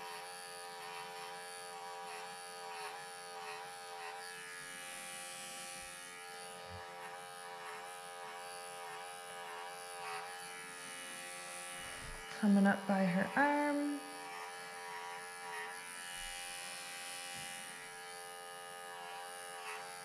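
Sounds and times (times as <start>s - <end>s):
electric clippers buzzing: 0.0s - 20.0s.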